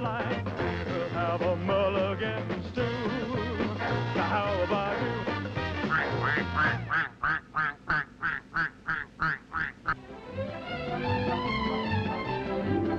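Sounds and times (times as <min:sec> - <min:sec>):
duck quacking: 0:03.8 - 0:10.0
orchestral music with held notes: 0:10.0 - 0:12.9.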